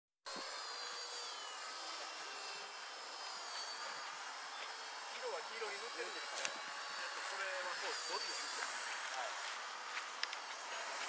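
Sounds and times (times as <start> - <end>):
rc helicopter motor and rotor whine: 0.3 - 11.0.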